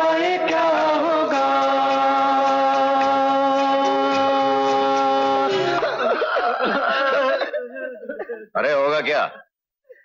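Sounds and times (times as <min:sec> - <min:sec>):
men's voices: 0:00.0 - 0:09.4
men laughing: 0:05.4 - 0:08.5.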